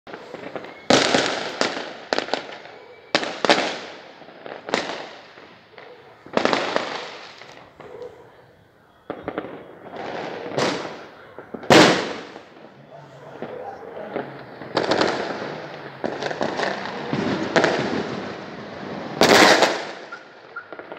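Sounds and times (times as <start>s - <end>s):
fireworks booming: 0.1s - 20.9s.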